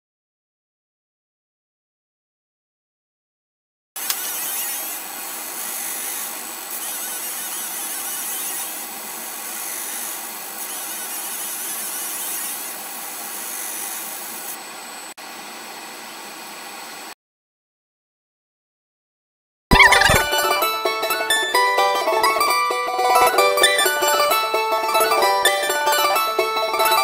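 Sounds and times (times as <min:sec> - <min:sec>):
laser marking machine whir: 0:04.0 - 0:14.6.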